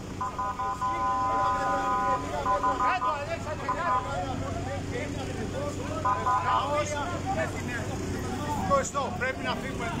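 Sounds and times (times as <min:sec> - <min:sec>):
vehicle horn honking: 0:00.2 - 0:04.4, 0:06.0 - 0:06.7.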